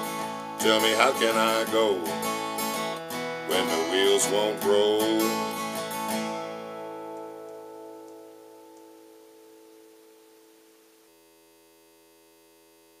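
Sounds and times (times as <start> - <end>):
acoustic guitar chord ringing: 0.0 - 13.0.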